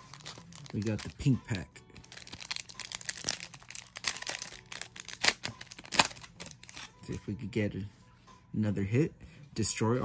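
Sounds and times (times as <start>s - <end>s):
plastic wrapper crinkling and tearing: 0.0s - 6.9s.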